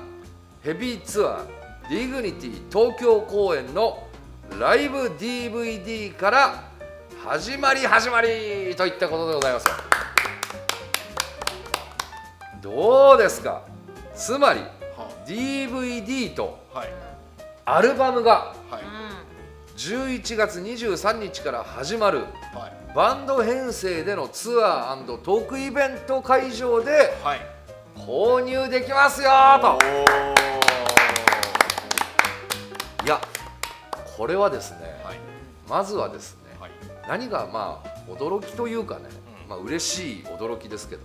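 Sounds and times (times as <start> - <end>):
background music: 0.0 - 41.0
people clapping: 9.2 - 12.4, 29.7 - 34.2.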